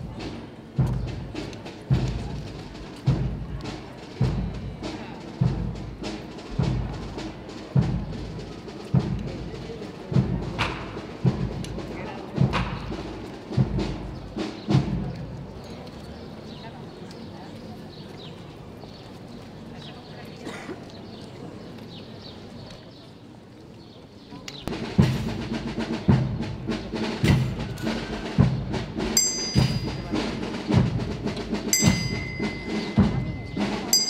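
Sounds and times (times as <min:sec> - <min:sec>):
deep drum beating: 0:00.0 - 0:15.4, 0:24.7 - 0:34.0.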